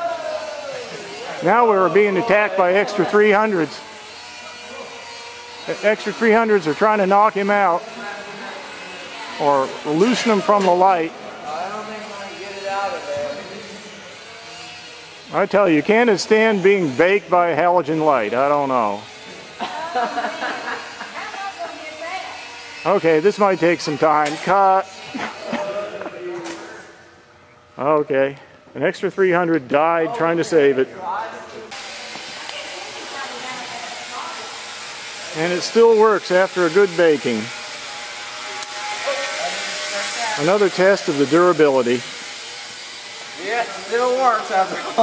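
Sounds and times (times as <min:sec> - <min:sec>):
small electric motors whining: 0:00.0 - 0:28.0, 0:31.7 - 0:45.0.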